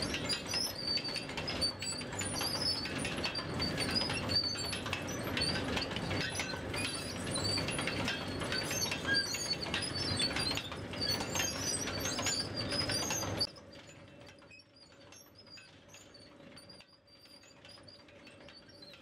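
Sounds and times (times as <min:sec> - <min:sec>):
chain conveyor clattering: 0:00.0 - 0:19.0
high squeaks: 0:00.0 - 0:19.0.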